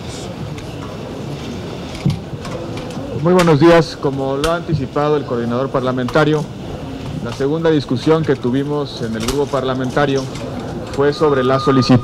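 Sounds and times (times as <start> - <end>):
crowded room background noise: 0.0 - 12.0.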